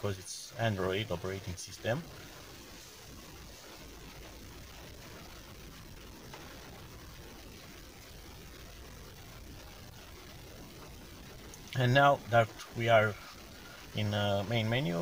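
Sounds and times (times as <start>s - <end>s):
faint car cabin hiss: 0.0s - 8.0s, 10.8s - 15.0s.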